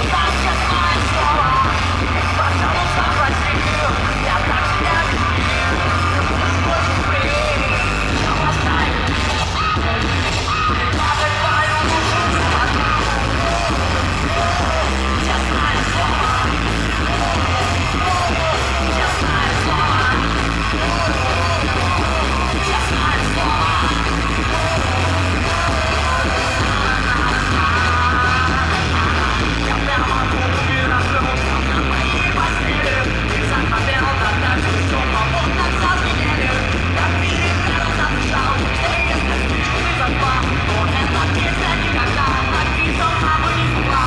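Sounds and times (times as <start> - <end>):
live rock band playing: 0.0 - 44.0
man singing: 0.0 - 44.0.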